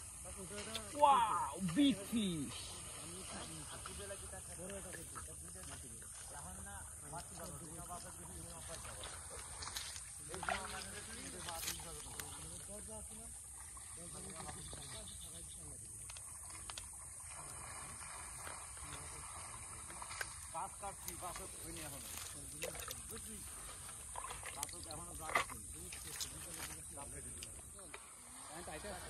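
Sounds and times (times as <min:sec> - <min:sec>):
steady high-pitched hiss: 0:00.0 - 0:29.0.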